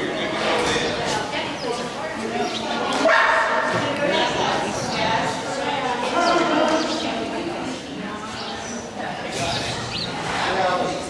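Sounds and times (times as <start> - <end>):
dog barking: 3.0 - 3.7.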